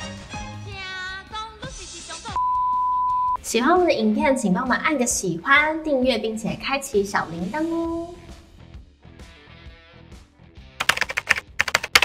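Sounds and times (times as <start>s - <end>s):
soft background music: 3.4s - 8.7s
keyboard key clicks: 10.8s - 12.0s.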